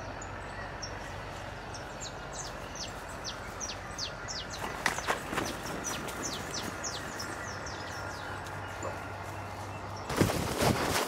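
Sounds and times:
low steady hum: 0.0s - 10.2s
bird chirping: 0.0s - 10.5s.

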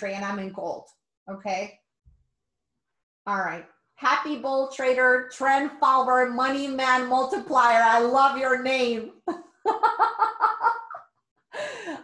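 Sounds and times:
woman laughing: 9.2s - 12.0s.

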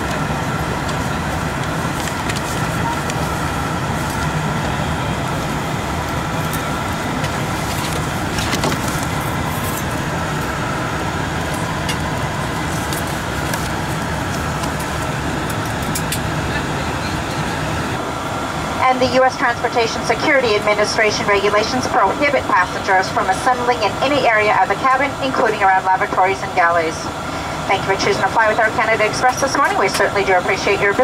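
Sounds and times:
airliner cabin drone: 0.0s - 31.0s
faint steady whine: 0.0s - 31.0s.

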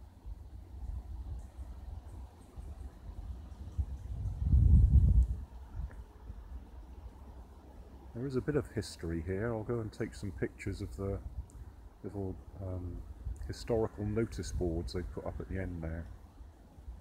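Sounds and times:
wind buffeting microphone: 0.2s - 6.7s, 10.2s - 11.9s.

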